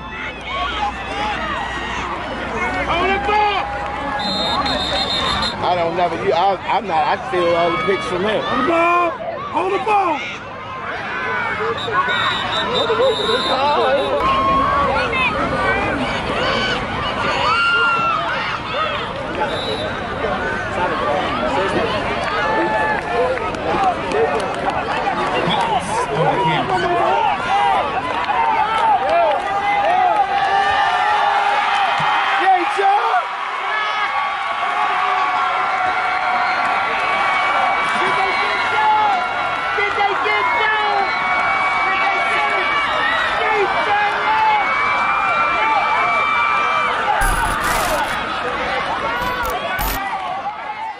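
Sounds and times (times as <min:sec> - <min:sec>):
crowd shouting and cheering: 0:00.0 - 0:50.9.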